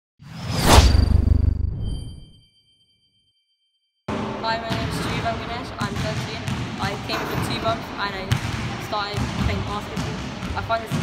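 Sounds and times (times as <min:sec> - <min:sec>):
whoosh: 0:00.2 - 0:02.4
thin high ringing tone: 0:01.8 - 0:03.8.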